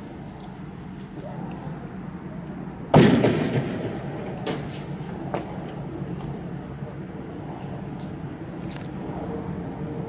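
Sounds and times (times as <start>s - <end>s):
loud firework bang with echo: 2.9s - 5.5s.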